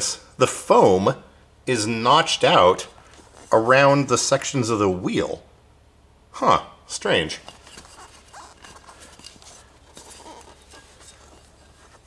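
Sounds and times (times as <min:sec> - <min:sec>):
faint knocks and rubbing: 0:07.4 - 0:12.0.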